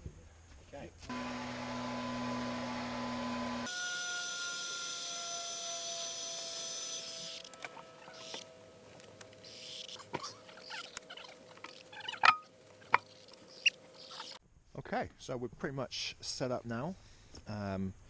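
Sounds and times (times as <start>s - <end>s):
steady hum with held tones: 6.0s - 14.4s.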